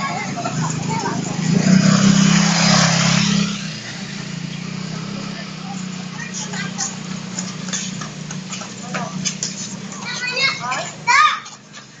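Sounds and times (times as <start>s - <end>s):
children calling out: 0.0s - 2.2s, 6.0s - 8.8s, 9.8s - 12.0s
child shouting: 10.0s - 11.6s.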